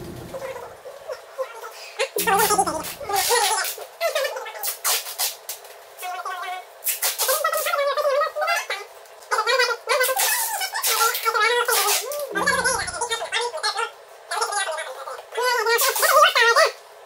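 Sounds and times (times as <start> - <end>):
packing tape screeching off roll: 4.6 - 5.6, 6.8 - 7.7, 10.0 - 12.4.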